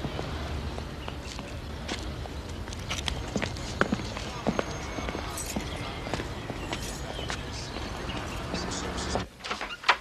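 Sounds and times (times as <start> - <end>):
footsteps on paved path: 0.0 - 9.2
low traffic rumble: 0.0 - 10.0.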